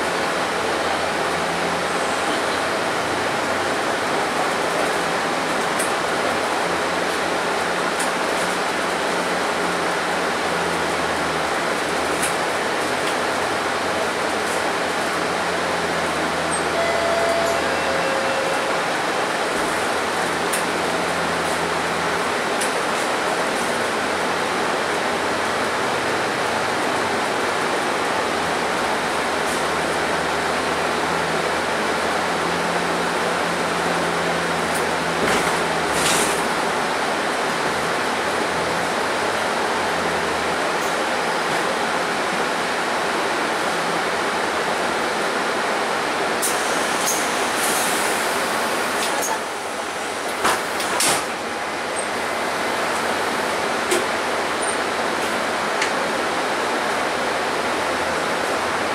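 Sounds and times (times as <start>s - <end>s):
bus engine and road noise: 0.0s - 58.9s.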